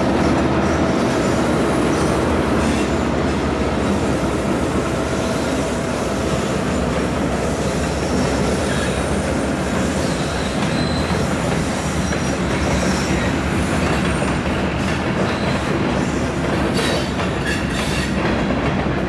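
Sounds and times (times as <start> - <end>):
train rumbling over bridge: 0.0 - 19.0
high wheel squeals: 5.1 - 13.4.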